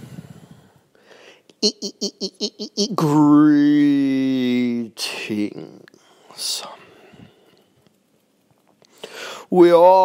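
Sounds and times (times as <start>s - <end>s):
man breathing in: 0.0s - 1.5s, 8.8s - 9.5s.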